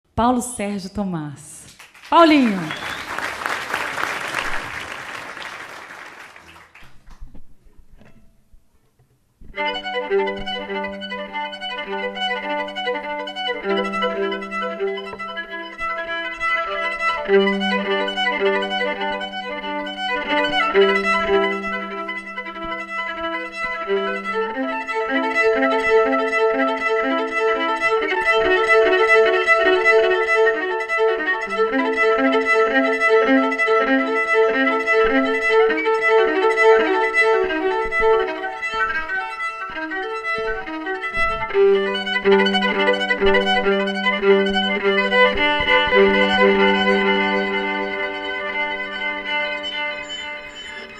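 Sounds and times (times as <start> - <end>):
fast violin melody: 9.5 - 50.9.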